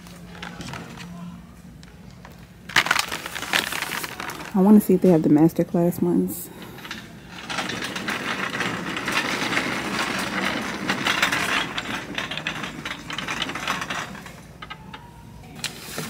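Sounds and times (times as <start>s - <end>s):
shopping cart casters rattling: 2.7s - 16.0s.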